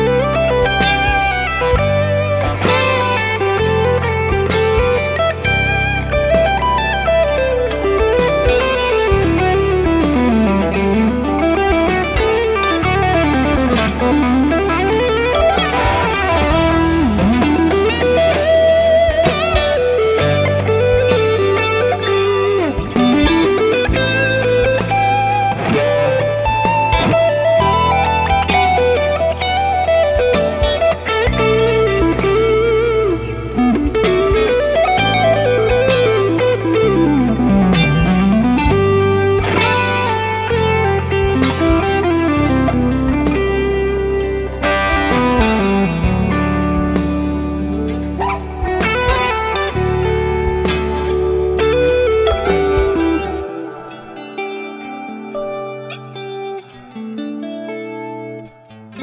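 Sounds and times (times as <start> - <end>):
electric guitar playing: 0.0 - 59.0
held low guitar notes: 0.0 - 59.0.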